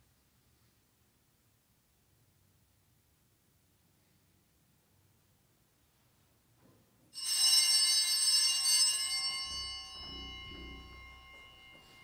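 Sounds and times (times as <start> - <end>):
bell ringing: 7.2 - 12.0.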